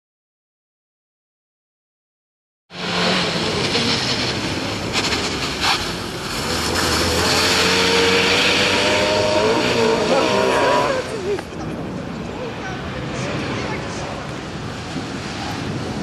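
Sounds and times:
rally car engine revving: 0:02.7 - 0:16.0.

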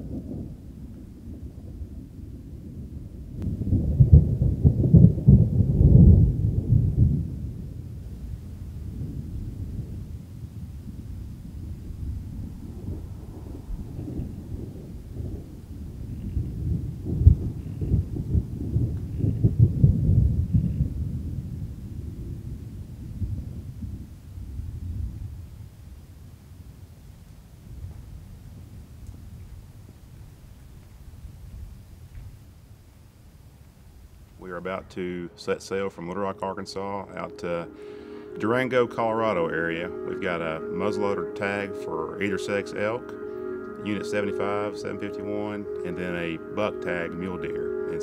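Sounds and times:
rolling thunder rumbles: 0:00.0 - 0:48.0.

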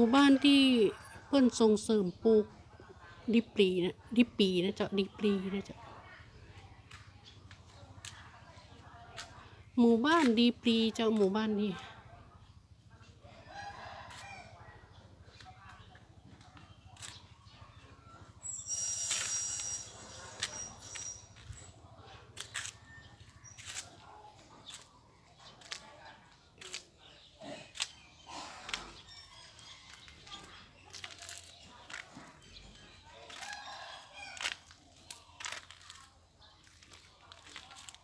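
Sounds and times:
rooster crowing: 0:13.4 - 0:14.6.

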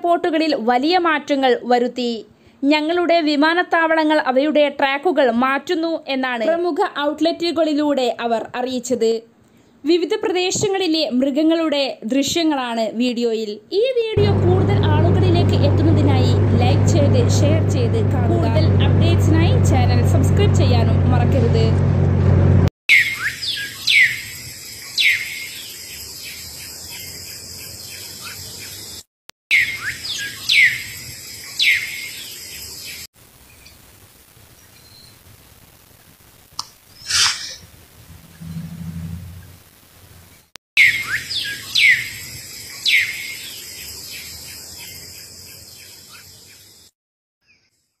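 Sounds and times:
birds chirping: 0:22.9 - 0:33.1, 0:40.8 - 0:46.8.

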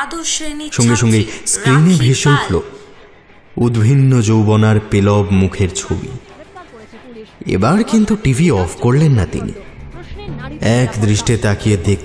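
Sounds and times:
man chanting in monotone: 0:00.8 - 0:01.9.

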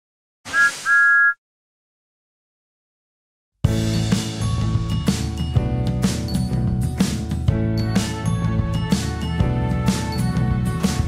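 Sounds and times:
cartoon steam whistle toots: 0:00.5 - 0:01.4.

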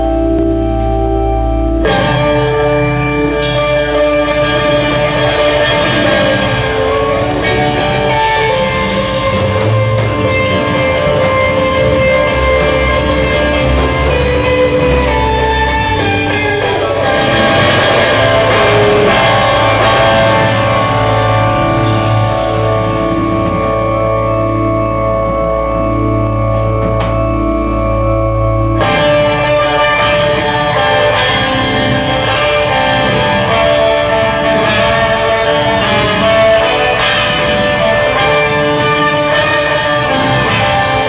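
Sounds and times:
electric guitar: 0:00.0 - 0:41.0
live rock band playing: 0:00.0 - 0:41.0.

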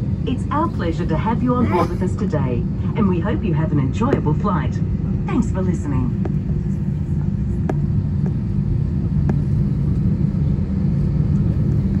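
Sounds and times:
aircraft engines idling rumble: 0:00.0 - 0:12.0.

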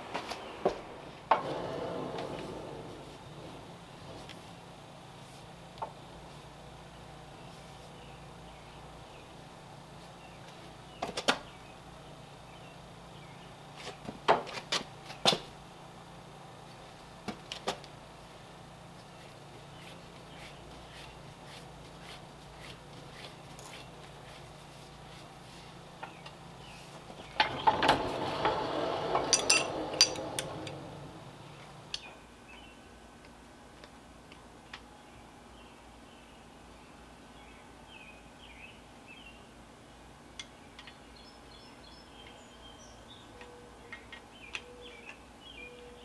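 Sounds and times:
low steady hum: 0:00.0 - 0:46.0
metal rattling and scraping: 0:27.2 - 0:32.0
metallic clanks and knocks: 0:27.3 - 0:31.1.

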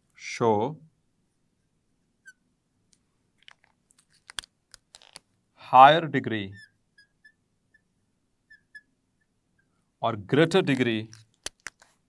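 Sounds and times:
marker squeaking on glass board: 0:02.2 - 0:02.4, 0:06.5 - 0:07.9, 0:08.5 - 0:09.7.

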